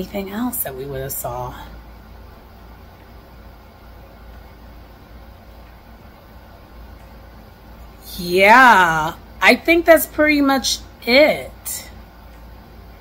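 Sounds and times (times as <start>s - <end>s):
room background hiss and hum: 0.0s - 13.0s.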